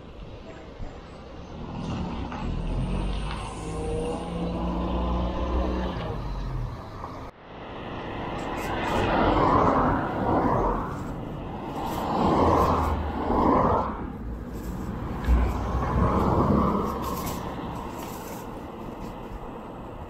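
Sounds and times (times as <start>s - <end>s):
traffic and road noise rushing: 0.0s - 20.0s.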